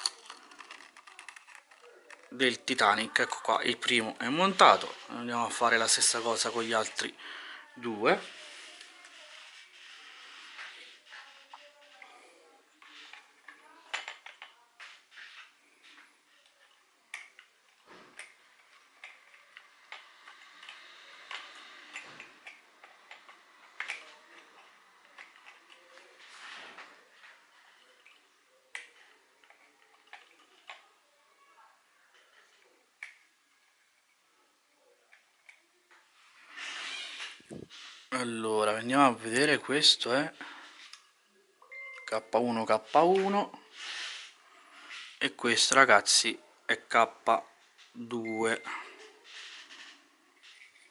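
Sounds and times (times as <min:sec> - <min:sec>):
plastic parts clicking and tapping: 0:00.0 - 0:02.4, 0:17.1 - 0:26.1
soft rustling: 0:07.8 - 0:19.8.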